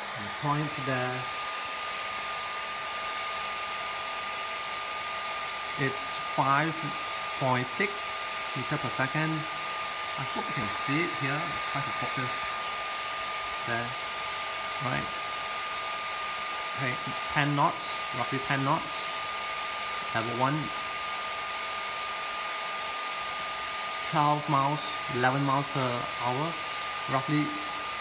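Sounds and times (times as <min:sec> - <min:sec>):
hair dryer running: 0:00.0 - 0:28.0.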